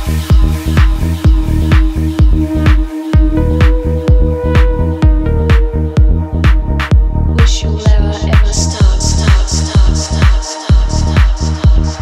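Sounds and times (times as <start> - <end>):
held synth notes: 0.0 - 9.3
kick drum: 0.0 - 12.0.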